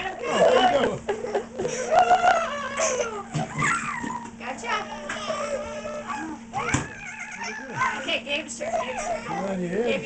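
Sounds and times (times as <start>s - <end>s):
children whiny cries: 0.2s - 9.7s.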